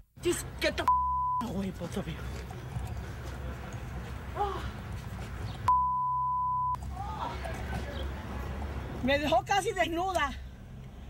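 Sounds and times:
footsteps on pavement: 0:02.1 - 0:05.7.

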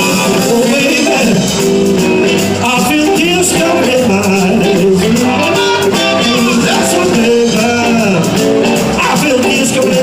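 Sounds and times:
harmonica wailing bent notes: 0:00.0 - 0:08.9
live blues band playing: 0:00.0 - 0:10.0.

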